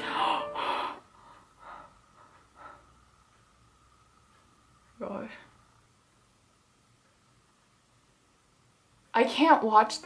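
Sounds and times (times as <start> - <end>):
woman gasping: 0.0 - 1.9
faint breaths: 0.0 - 3.5.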